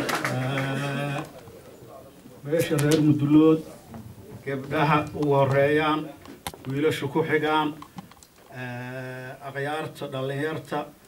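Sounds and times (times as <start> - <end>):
man chanting a long syllable: 0.2 - 1.3
man speaking into microphone: 0.3 - 7.9, 8.5 - 11.0.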